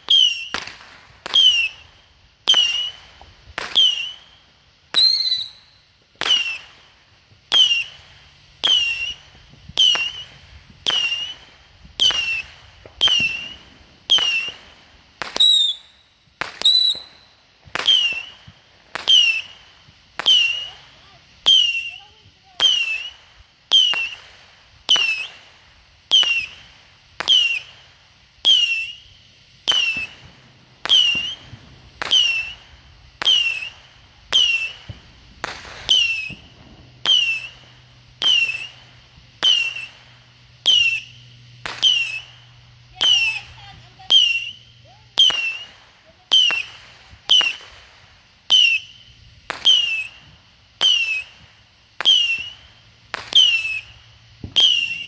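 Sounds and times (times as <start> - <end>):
firework whistle falling in pitch: 0.0 - 0.7, 3.6 - 4.3, 5.0 - 6.6, 7.5 - 8.0, 8.6 - 9.2, 9.8 - 14.6, 15.2 - 18.4, 20.2 - 24.2, 26.1 - 26.6, 28.4 - 32.6, 33.2 - 37.6, 38.2 - 40.0, 40.6 - 47.6, 48.5 - 51.4, 52.0 - 55.0
firework pops: 0.0 - 27.8, 28.4 - 55.0.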